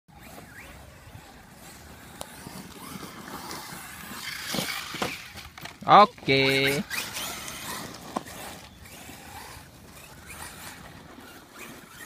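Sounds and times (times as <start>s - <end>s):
rc car motor whine: 0.1s - 12.0s
tyres on dirt: 0.1s - 12.0s.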